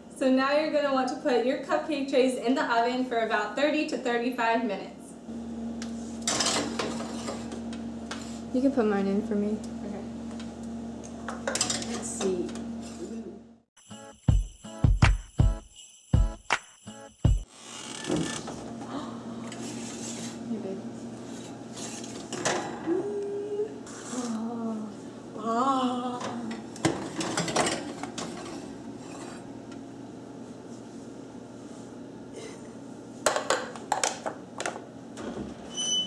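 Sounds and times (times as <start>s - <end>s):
metal tin scraping on oven rack: 6.2s - 8.4s, 26.9s - 29.5s
steady low hum: 18.4s - 33.2s.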